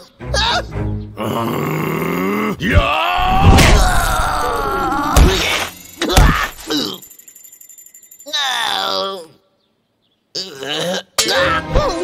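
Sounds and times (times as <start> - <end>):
groan falling in pitch: 1.2 - 5.4.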